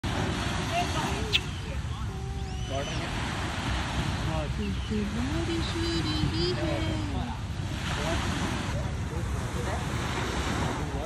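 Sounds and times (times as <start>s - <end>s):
surf rumbling: 0.0s - 11.0s
wind: 0.0s - 11.0s.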